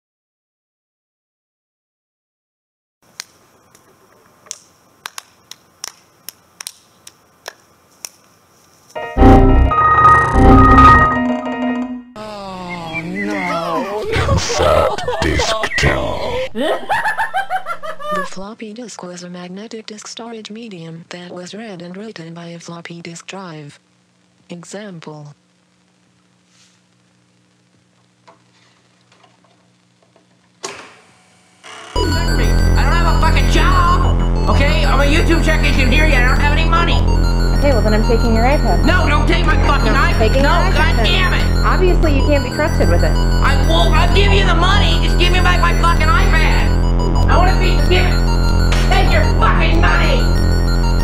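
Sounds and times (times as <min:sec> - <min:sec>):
faint background hiss: 0:03.0 - 0:09.0
hands slapping: 0:04.5 - 0:08.2
low hum: 0:09.0 - 0:13.0, 0:31.6 - 0:51.0
sudden loud sound: 0:09.2 - 0:11.6.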